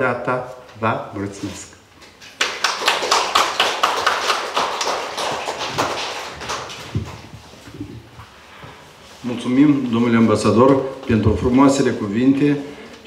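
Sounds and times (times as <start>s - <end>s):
audience clapping: 2.2s - 7.6s.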